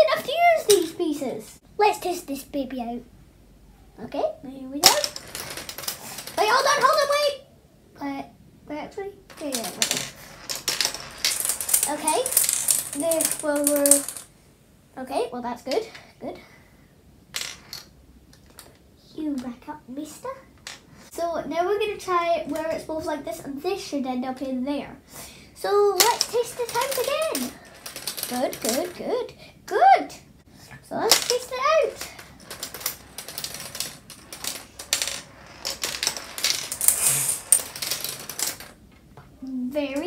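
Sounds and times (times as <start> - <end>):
marbles clicking and clacking: 4.8 - 7.2, 9.3 - 14.3, 26.0 - 29.0, 31.0 - 38.8.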